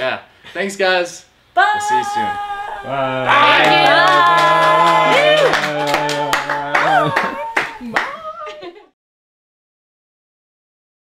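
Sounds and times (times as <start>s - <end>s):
voices: 1.6s - 8.9s
hand claps: 3.5s - 8.2s.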